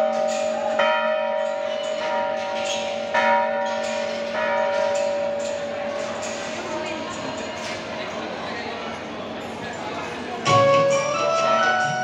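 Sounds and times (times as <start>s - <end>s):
large metal bell ringing: 0.0s - 7.4s.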